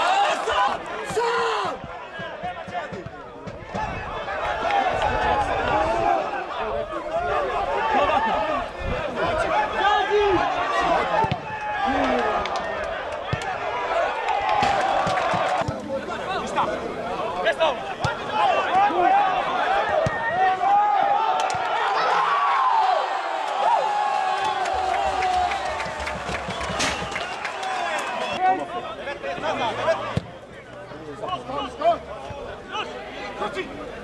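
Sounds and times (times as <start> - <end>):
people shouting: 0.0 - 3.0, 17.9 - 28.4.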